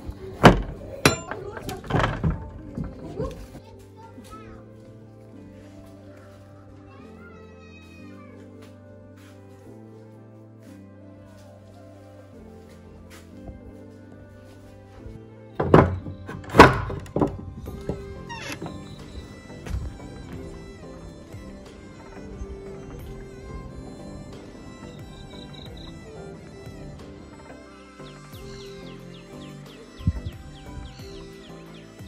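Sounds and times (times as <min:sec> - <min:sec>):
background music: 0:00.0 - 0:32.0
door knocks: 0:00.4 - 0:03.2, 0:15.6 - 0:27.0.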